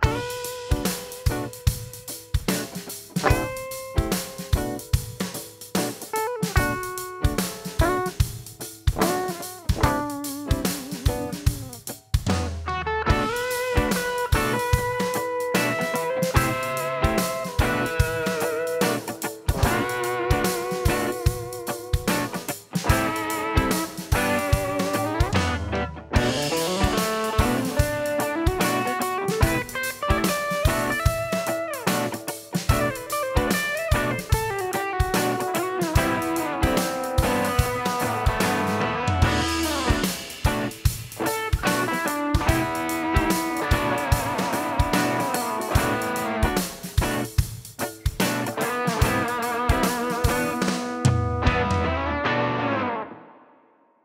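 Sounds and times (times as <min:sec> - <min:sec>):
electric guitar lead with bends: 0:00.0 - 0:53.7.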